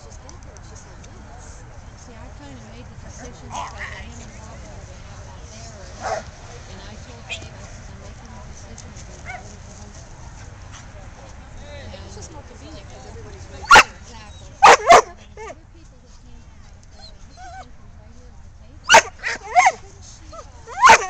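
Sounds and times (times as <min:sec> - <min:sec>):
dog barking: 0:06.0 - 0:06.3, 0:13.7 - 0:13.9, 0:14.6 - 0:15.2, 0:18.9 - 0:19.8, 0:20.8 - 0:21.0.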